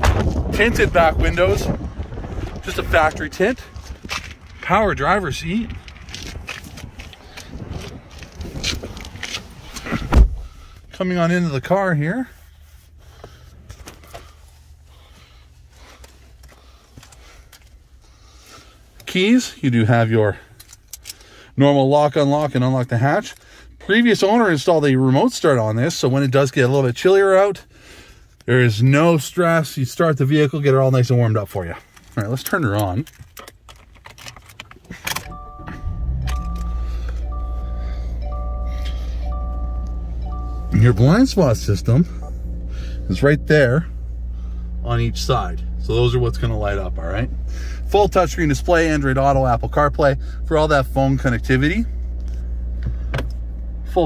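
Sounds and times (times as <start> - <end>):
car engine starting and idling: 0.0 - 54.0
key fob rustling and clicks: 3.7 - 10.0, 20.5 - 21.3, 31.8 - 42.7
low steady hum: 35.0 - 54.0
two-tone warning chime: 35.3 - 43.5.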